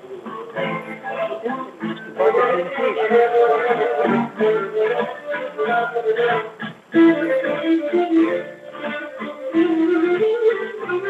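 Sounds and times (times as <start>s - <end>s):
plucked lute accompaniment: 0.0s - 11.0s.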